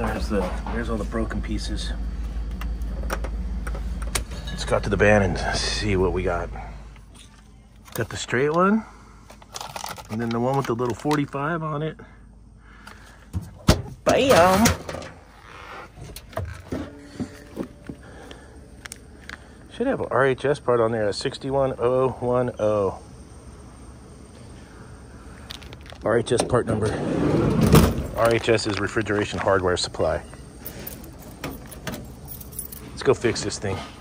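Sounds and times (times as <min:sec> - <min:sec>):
keys jingling: 0:30.5 - 0:33.5.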